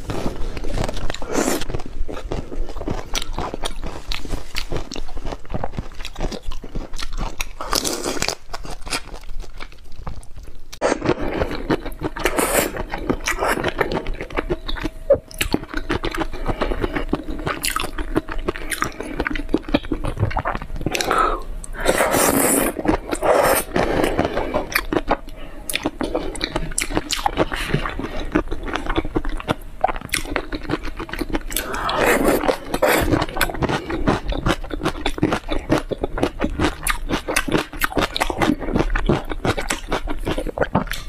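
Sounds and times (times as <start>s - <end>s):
chewing and crunching shrimp: 0.0s - 41.0s.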